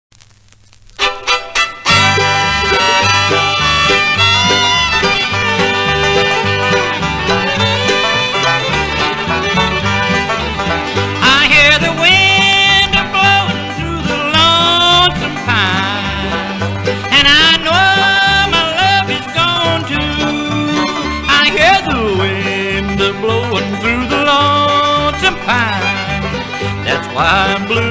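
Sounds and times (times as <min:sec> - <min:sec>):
bluegrass instrumental music: 0:00.9 - 0:27.9
fiddle sliding in pitch: 0:01.0 - 0:27.9.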